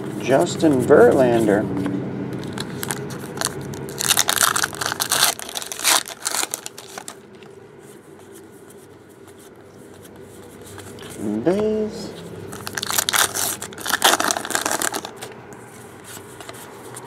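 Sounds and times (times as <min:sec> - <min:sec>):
foil wrapper tearing and crinkling: 0:02.4 - 0:07.2, 0:12.5 - 0:15.3
cards rustling: 0:02.4 - 0:11.3, 0:12.1 - 0:17.0.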